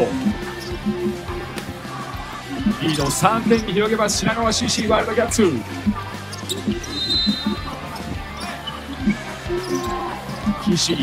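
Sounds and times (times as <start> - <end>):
arena background music: 0.0 - 11.0.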